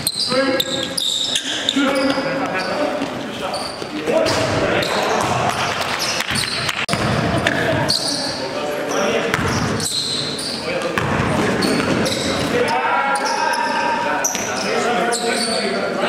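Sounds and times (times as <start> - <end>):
players shouting: 4.2 - 5.8, 12.0 - 15.1.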